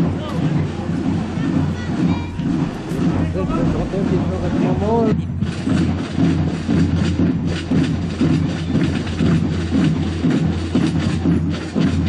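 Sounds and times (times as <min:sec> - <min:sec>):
marching snare drums: 0:00.0 - 0:12.0.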